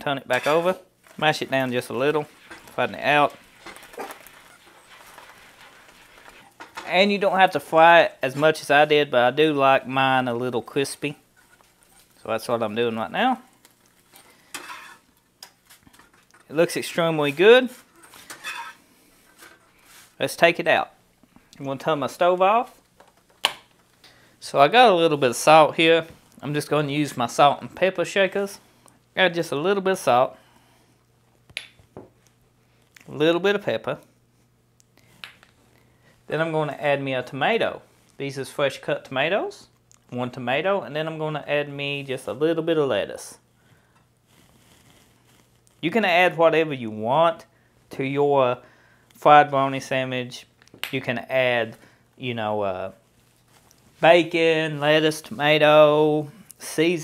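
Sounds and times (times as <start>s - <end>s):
man speaking: 0.0s - 3.5s, 6.8s - 11.2s.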